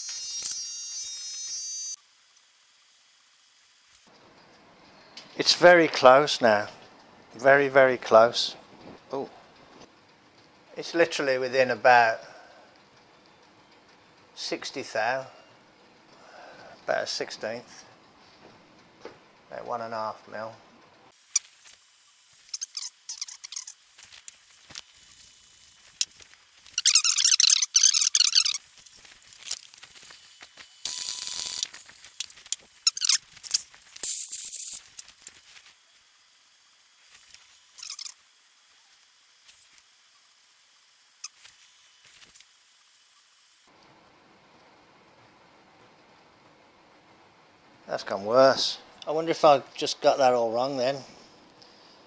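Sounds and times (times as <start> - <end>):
short bursts of hiss: 30.0 - 43.2.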